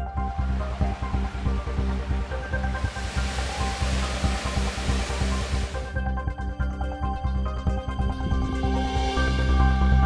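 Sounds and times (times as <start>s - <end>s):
percussive background music: 0.0s - 8.8s
water rushing in rocky stream: 0.4s - 6.0s.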